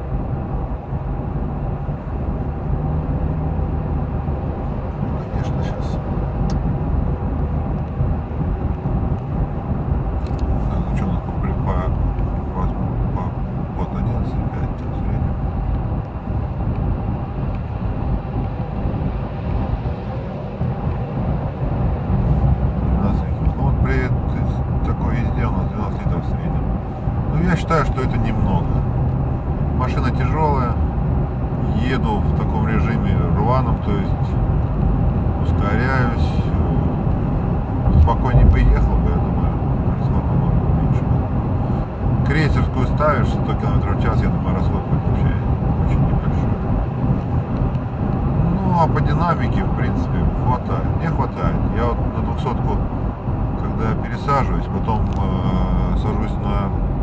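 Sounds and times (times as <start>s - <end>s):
car cabin road drone: 0.0s - 57.0s.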